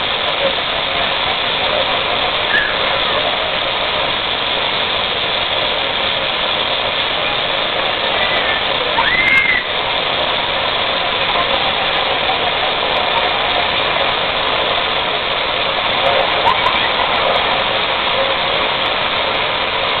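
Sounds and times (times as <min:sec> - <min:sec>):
waterfall rushing: 0:00.0 - 0:20.0.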